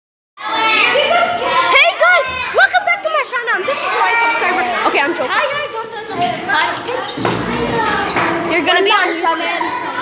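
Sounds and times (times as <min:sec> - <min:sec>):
children chattering: 0:00.4 - 0:10.0.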